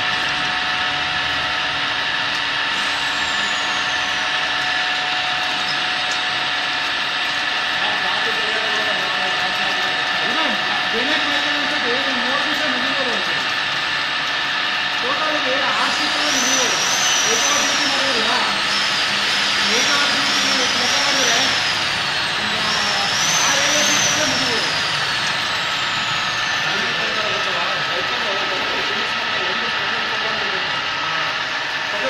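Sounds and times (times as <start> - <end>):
drilling machine hum: 0.0 - 32.0
high whine of drill cutting: 0.0 - 32.0.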